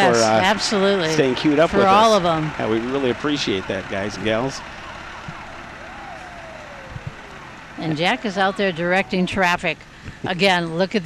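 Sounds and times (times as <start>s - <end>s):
fire engine driving past: 0.1s - 10.0s
faint tone sliding down: 2.4s - 9.0s.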